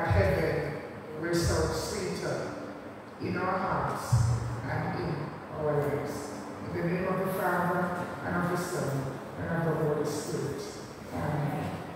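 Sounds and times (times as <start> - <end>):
man speaking into a microphone: 0.0 - 2.6, 3.2 - 11.9.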